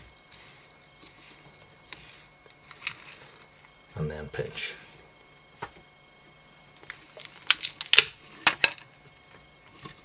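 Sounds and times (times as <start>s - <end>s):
fibres rustling through plastic straw: 0.0s - 5.0s, 6.7s - 10.0s.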